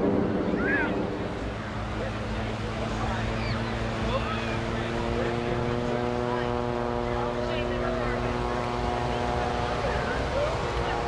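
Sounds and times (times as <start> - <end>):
aircraft engine drone: 0.0 - 11.0.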